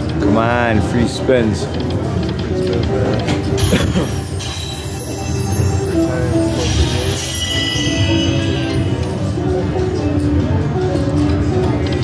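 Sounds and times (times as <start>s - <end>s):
casino background din: 0.0s - 12.0s
slot machine spin tune: 3.4s - 10.0s.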